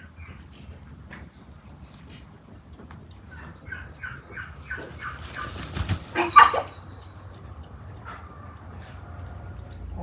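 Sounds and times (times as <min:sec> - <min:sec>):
chickens clucking: 0:03.1 - 0:06.8.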